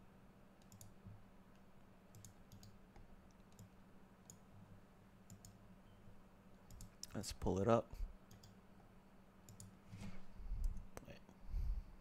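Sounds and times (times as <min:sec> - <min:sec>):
steady low hum: 0:00.0 - 0:12.0
computer mouse clicks: 0:00.6 - 0:01.2, 0:02.1 - 0:04.4, 0:05.3 - 0:05.6, 0:06.7 - 0:07.2, 0:08.3 - 0:08.6, 0:09.4 - 0:09.8, 0:10.6 - 0:10.9.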